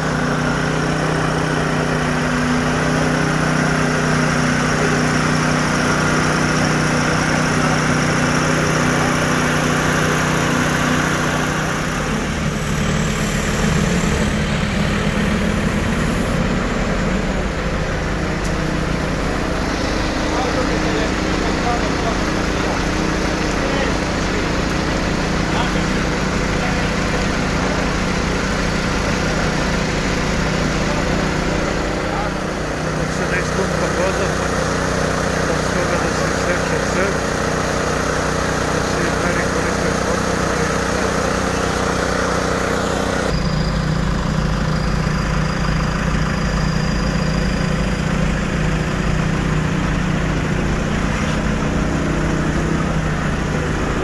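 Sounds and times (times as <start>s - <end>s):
heavy vehicle engines idling: 0.0s - 54.0s.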